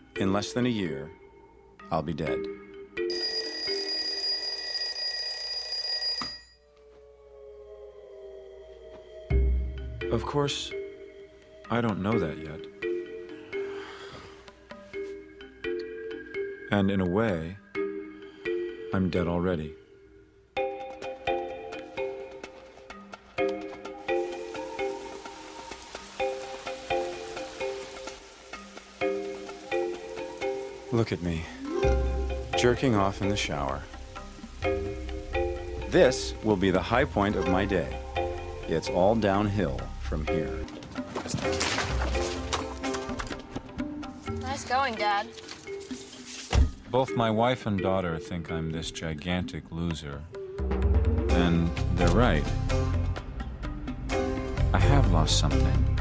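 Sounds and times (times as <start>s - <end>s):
alarm clock bell ringing: 3.1s - 6.7s
shower spray hissing: 24.0s - 33.4s.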